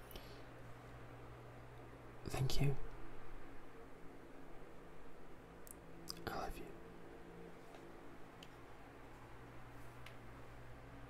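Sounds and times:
man whispering: 2.2 - 2.9, 6.1 - 6.9.

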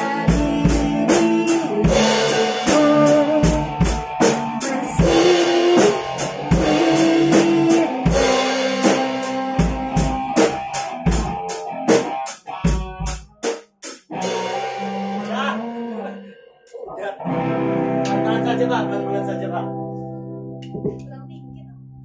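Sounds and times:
drum fills and cymbal hits: 0.0 - 16.8
bass guitar: 0.0 - 22.0
electric guitar: 0.0 - 22.0
held guitar notes with bends: 0.0 - 22.0.

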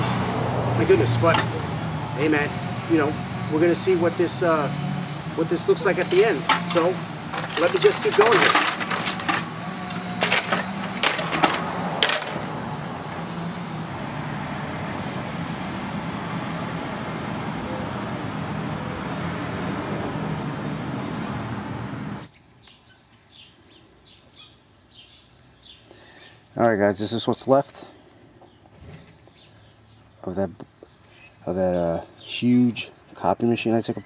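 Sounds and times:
metallic clinks of machine parts: 5.8 - 13.2.

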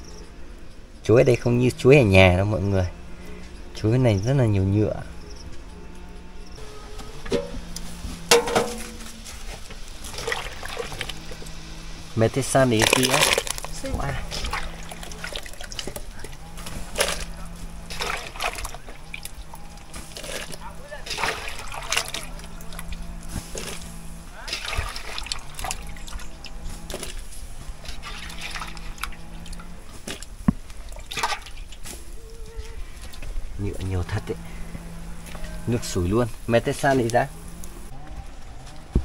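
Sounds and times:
boiling water bubbling: 8.3 - 11.5, 12.7 - 16.3, 17.8 - 26.4, 27.8 - 31.8
banana slices splashing into water: 21.1 - 22.4, 24.5 - 25.8, 31.0 - 31.6.

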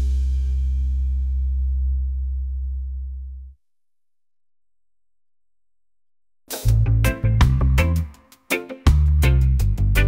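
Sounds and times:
deep bass tone: 0.0 - 3.6.

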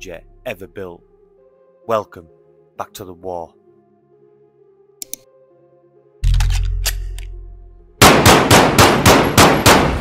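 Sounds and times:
rapid gunfire: 8.0 - 10.0.

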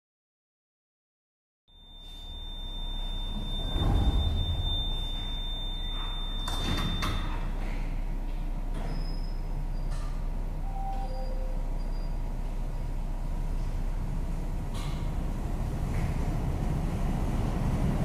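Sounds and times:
high warning tone: 1.7 - 7.8
low hum: 1.7 - 18.0
sliding doors clattering: 3.2 - 7.6.

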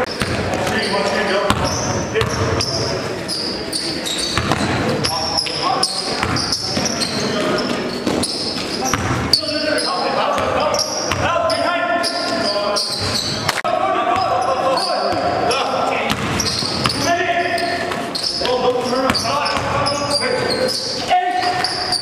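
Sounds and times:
people's voices echoing: 0.0 - 22.0
basketball dribbling on gym floor: 1.5 - 2.7, 4.3 - 4.8, 16.1 - 17.1.

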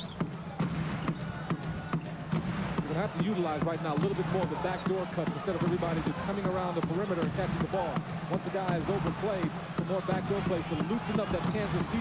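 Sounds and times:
arena crowd murmur: 0.0 - 12.0.

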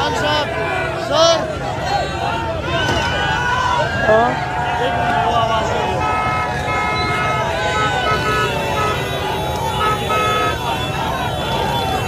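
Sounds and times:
crowd shouting: 0.0 - 12.0
vehicle horn toots: 5.9 - 12.0.

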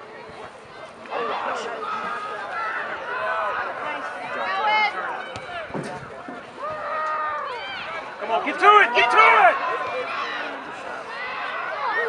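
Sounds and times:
people shouting: 6.6 - 12.0.

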